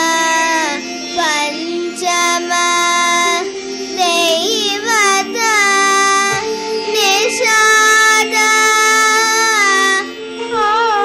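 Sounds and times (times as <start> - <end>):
girl singing ornamented notes: 0.0 - 11.0
tanpura drone: 0.0 - 11.0.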